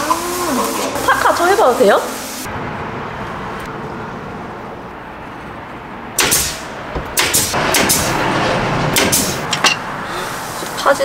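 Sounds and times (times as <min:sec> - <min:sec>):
steady background noise: 0:00.0 - 0:11.0
nail gun shots: 0:06.2 - 0:08.2, 0:09.0 - 0:09.4.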